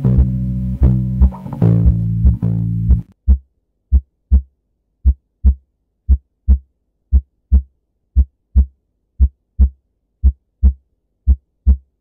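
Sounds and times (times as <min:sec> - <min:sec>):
heartbeat thumps: 0:00.2 - 0:11.9.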